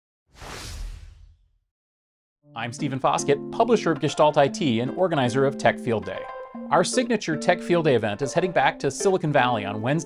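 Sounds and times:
whoosh sound effect: 0.3s - 1.5s.

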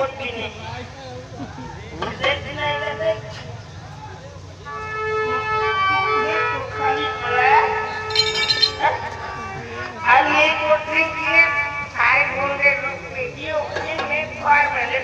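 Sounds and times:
held melodic line: 8.0s - 9.2s.

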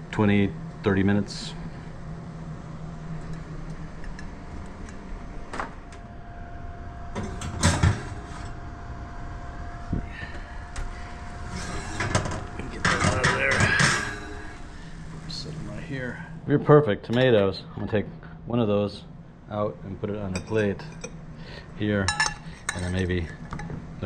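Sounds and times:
oven humming: 0.0s - 24.0s
oven door and rack clunk: 7.1s - 8.6s, 11.5s - 14.6s
ceramic dish scraping metal rack: 11.5s - 14.6s.

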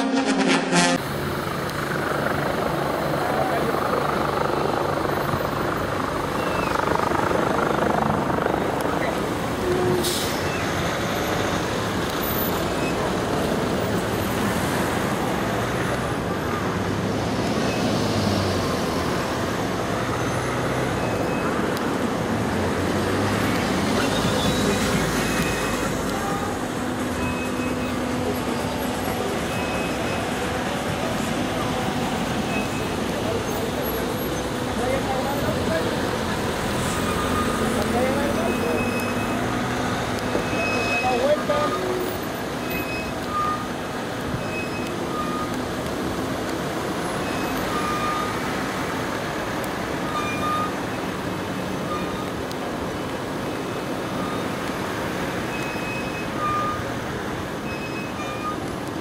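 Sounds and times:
car and truck engines running: 0.0s - 59.0s.

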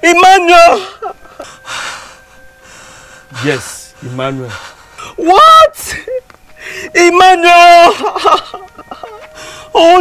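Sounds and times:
faint breathing: 1.4s - 5.2s, 6.5s - 7.0s, 9.3s - 9.8s.

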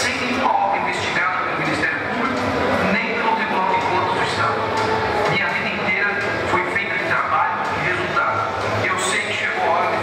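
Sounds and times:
man talking over loudspeakers: 0.0s - 10.0s
steady background noise: 0.0s - 10.0s.

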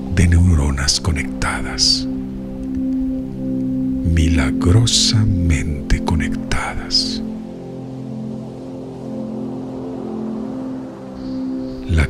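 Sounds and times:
calm instrumental music: 0.0s - 12.0s.

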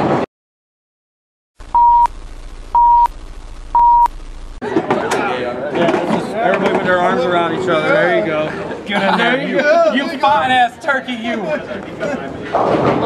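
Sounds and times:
tv static hiss: 1.6s - 4.6s
short countdown beeps: 1.8s - 2.1s, 2.8s - 3.1s
men talking and laughing: 4.6s - 12.7s.

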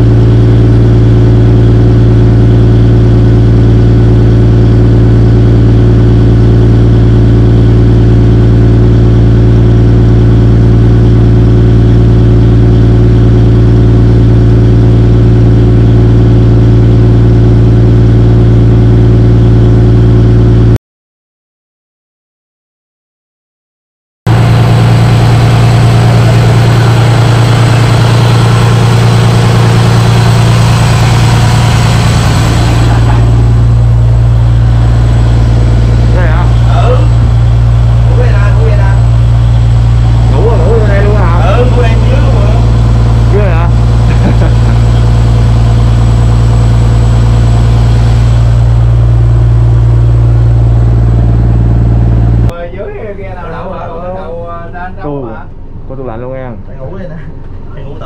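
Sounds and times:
boat engine humming: 0.0s - 20.8s, 24.3s - 56.4s.

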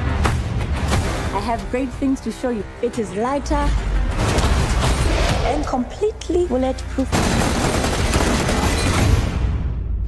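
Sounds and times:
automatic rifle fire: 7.1s - 9.1s.

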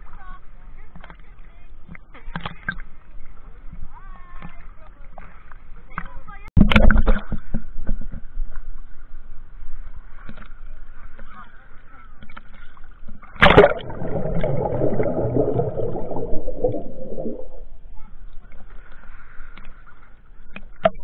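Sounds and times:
seawater sloshing and lapping: 10.1s - 21.0s
loud water splash: 13.4s - 17.8s.

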